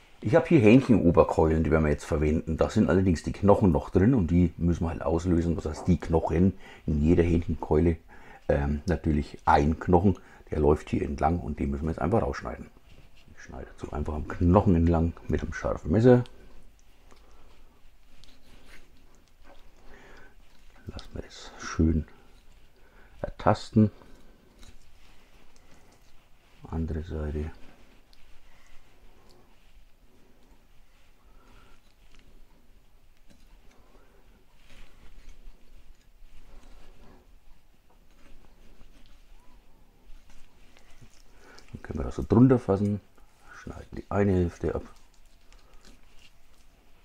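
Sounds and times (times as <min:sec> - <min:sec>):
man speaking: 0:00.2 - 0:12.7, 0:13.4 - 0:16.6, 0:20.8 - 0:22.2, 0:23.2 - 0:24.2, 0:26.5 - 0:27.8, 0:41.7 - 0:45.0.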